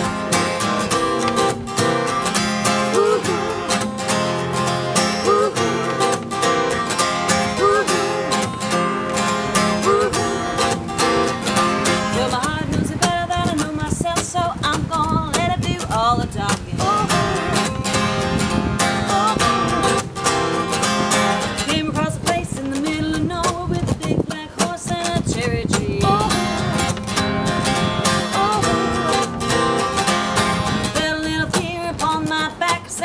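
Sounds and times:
acoustic guitars strumming: 0.0s - 33.0s
woman singing: 2.6s - 4.1s, 4.7s - 6.4s, 7.1s - 10.8s, 11.8s - 17.7s, 18.8s - 20.2s, 20.8s - 30.1s, 30.7s - 33.0s.

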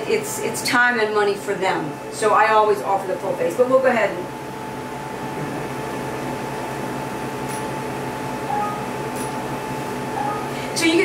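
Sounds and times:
cooling fan running: 0.0s - 11.0s
machine humming: 4.2s - 11.0s.

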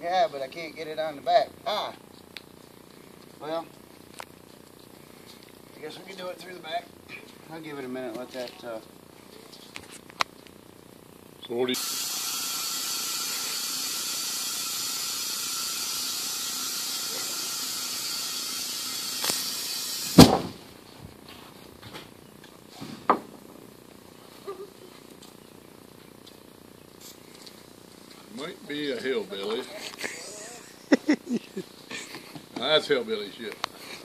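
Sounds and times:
steady hiss: 10.0s - 21.6s
loud bang inside tire: 20.2s - 20.6s.

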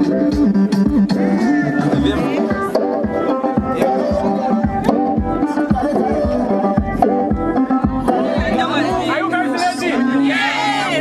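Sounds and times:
music with steady drum beat: 0.0s - 9.1s.

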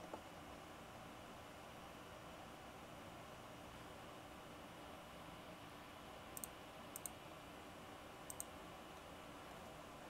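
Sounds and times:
faint steady hiss: 0.0s - 10.0s
computer mouse clicking: 6.3s - 7.2s, 8.2s - 9.7s.

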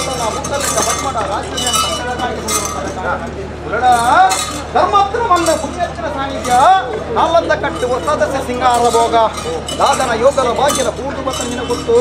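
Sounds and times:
light metallic clinks: 0.0s - 3.1s, 3.9s - 6.9s, 7.6s - 12.0s.

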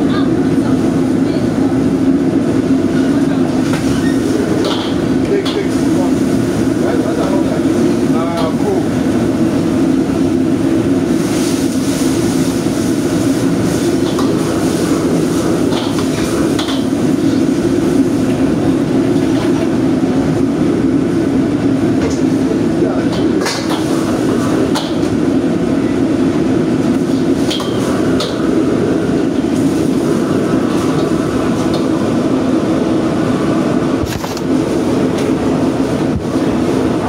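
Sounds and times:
gas wok burner roaring: 0.0s - 37.0s.

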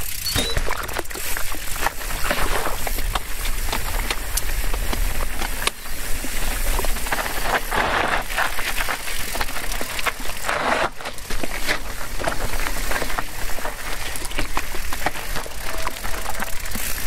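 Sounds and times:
bike knocking and rattling: 0.0s - 17.0s
tyres crunching over gravel: 0.8s - 17.0s.

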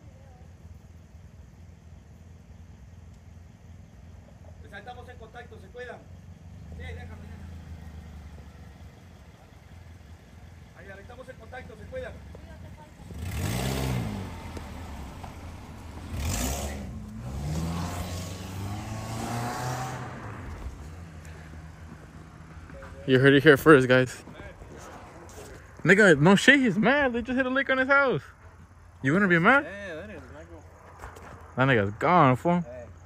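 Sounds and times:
tyres on road: 0.0s - 33.0s
cars driving past: 2.0s - 33.0s.

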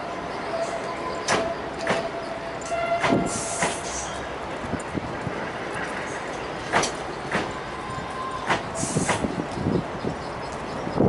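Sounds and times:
train rolling rumble: 0.0s - 11.0s
train wheels clacking over rail joints: 1.2s - 7.6s, 8.4s - 10.9s.

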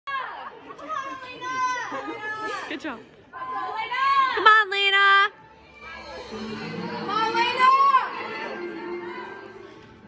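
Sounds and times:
girls cheering and yelling: 0.1s - 6.2s, 6.9s - 9.8s.

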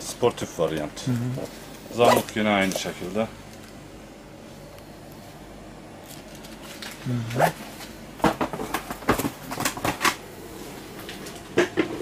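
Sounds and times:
man saying uh-huh: 7.0s - 7.6s.

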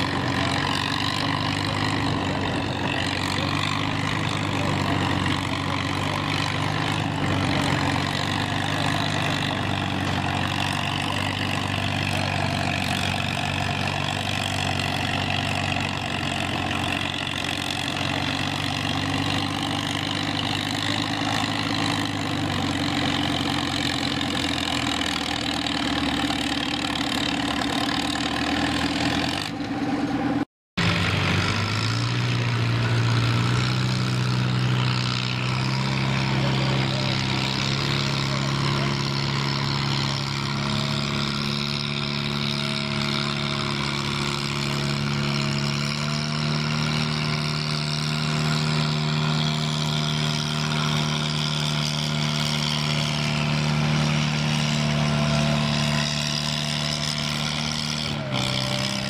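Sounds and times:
tractor engine running: 0.0s - 59.0s.

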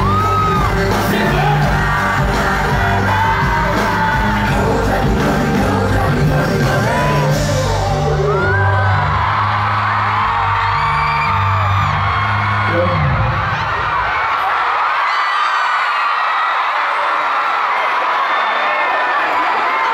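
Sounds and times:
pop dance track with heavy bass: 0.0s - 8.6s
crowd screaming and cheering: 0.0s - 19.9s.

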